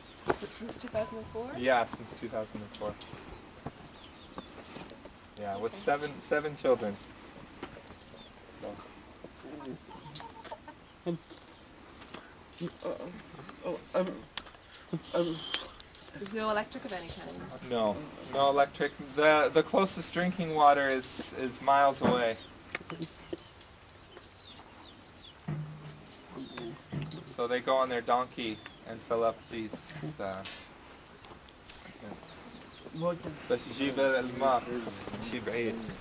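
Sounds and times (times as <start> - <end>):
faint bird chirps: 13.6 - 15.8, 22.3 - 27.4.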